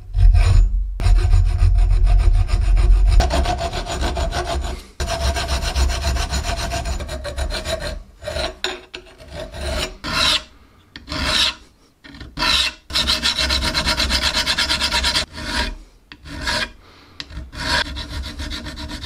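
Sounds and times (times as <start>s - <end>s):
file scraping steel: 0.0s - 19.0s.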